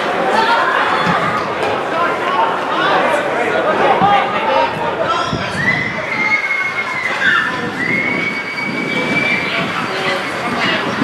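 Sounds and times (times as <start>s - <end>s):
football ground crowd noise: 0.0s - 11.0s.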